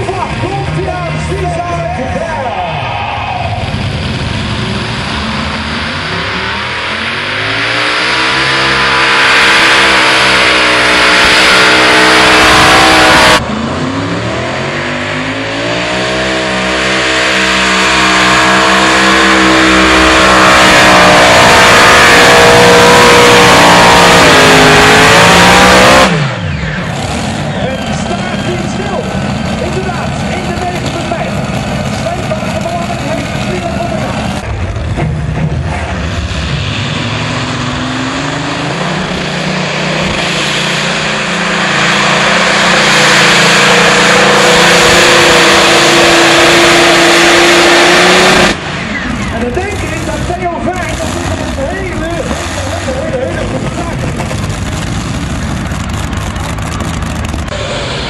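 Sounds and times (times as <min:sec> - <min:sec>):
pulling tractor engines at full throttle: 0:00.0 - 0:58.0
voices: 0:27.5 - 0:34.5.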